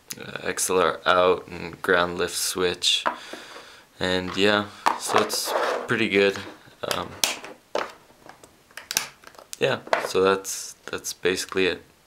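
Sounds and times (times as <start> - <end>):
plastic box clicks and knocks: 6.9 - 10.2.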